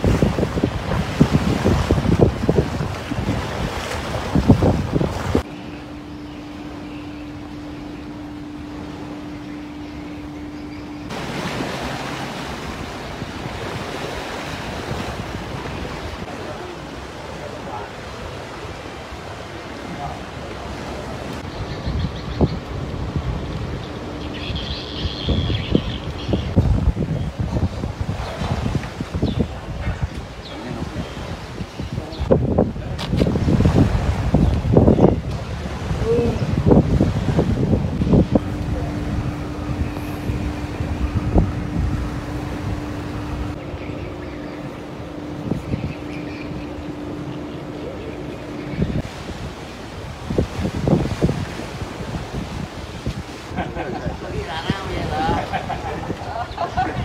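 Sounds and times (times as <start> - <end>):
steady low hum: 0.0 - 27.3, 33.9 - 52.8
wind buffeting microphone: 0.0 - 57.0.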